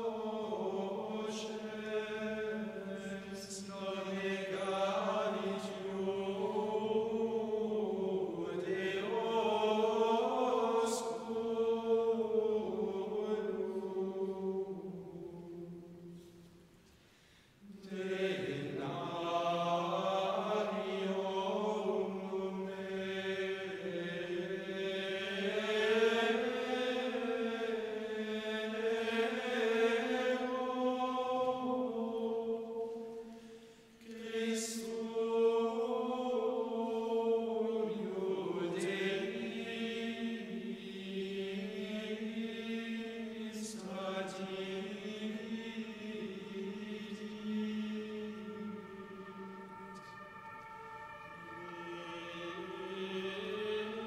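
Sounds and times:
men's choir chanting in unison: 0:00.0 - 0:16.2, 0:17.6 - 0:54.0.

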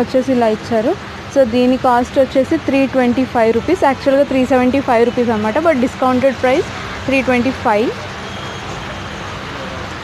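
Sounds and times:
shop background hum: 0:00.0 - 0:10.0.

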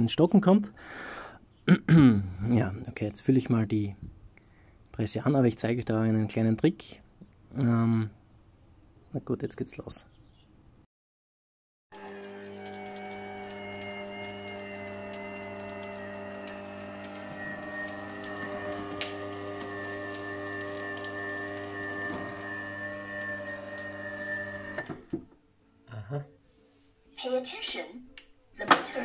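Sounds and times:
oil press motor humming and whining: 0:12.0 - 0:25.1.

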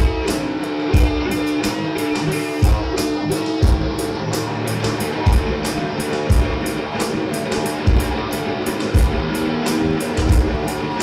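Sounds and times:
cymbal beat: 0:00.0 - 0:11.0
electric guitars sustained notes: 0:00.0 - 0:11.0.

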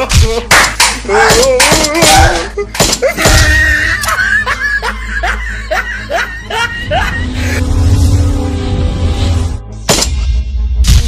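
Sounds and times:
person laughing in hoots: 0:02.2 - 0:07.6
steady low tone: 0:06.8 - 0:09.8.

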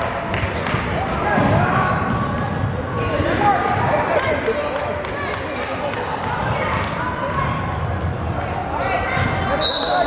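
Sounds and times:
voices of players and onlookers: 0:00.0 - 0:10.0.

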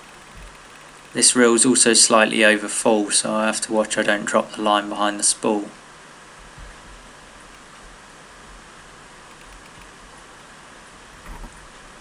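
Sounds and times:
faint low bumps: 0:06.4 - 0:10.2, 0:11.0 - 0:12.0.

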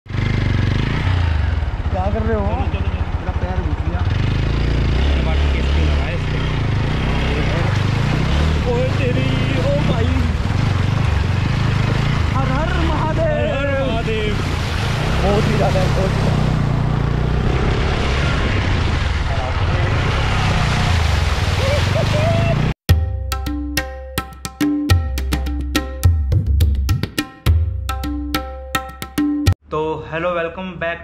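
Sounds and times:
motorcycle engine low rumble: 0:00.1 - 0:20.4
wheel splashing through water: 0:05.2 - 0:22.8.

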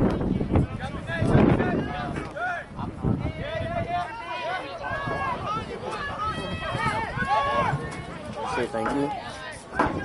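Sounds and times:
people shouting: 0:03.4 - 0:10.0.

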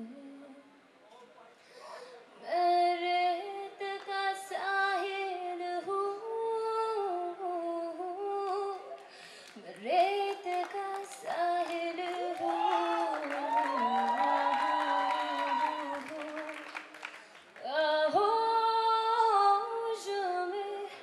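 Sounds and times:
woman singing into microphone: 0:00.0 - 0:00.7, 0:02.4 - 0:08.9, 0:09.6 - 0:21.0.

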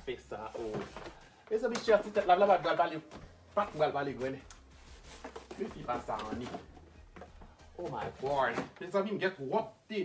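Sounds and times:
person talking: 0:05.5 - 0:06.7, 0:07.8 - 0:10.0.

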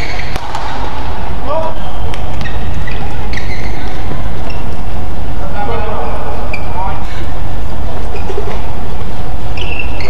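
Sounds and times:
shoe squeaks on court: 0:00.0 - 0:00.4, 0:02.4 - 0:04.7, 0:09.5 - 0:10.0
racket hitting shuttlecock: 0:00.0 - 0:00.9.

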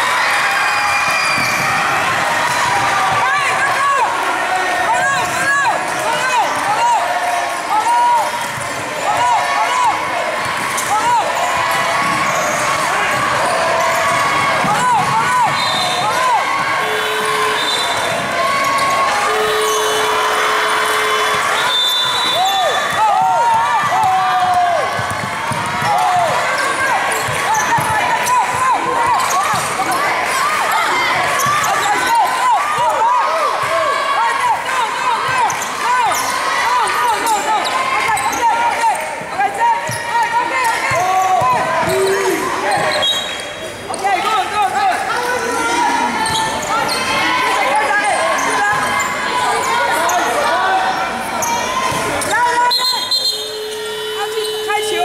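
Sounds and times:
spectators' voices: 0:00.0 - 0:55.0
sneaker squeaks: 0:01.0 - 0:01.8, 0:10.7 - 0:14.8, 0:15.4 - 0:24.2, 0:24.9 - 0:28.0, 0:29.1 - 0:30.1, 0:31.2 - 0:32.2, 0:39.8 - 0:44.1, 0:46.2 - 0:47.3, 0:47.9 - 0:50.4, 0:51.4 - 0:54.9
basketball bouncing: 0:10.4 - 0:19.1, 0:22.8 - 0:30.0.

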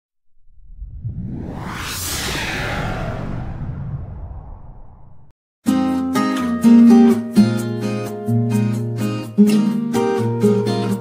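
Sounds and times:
rising whoosh: 0:00.3 - 0:05.3.

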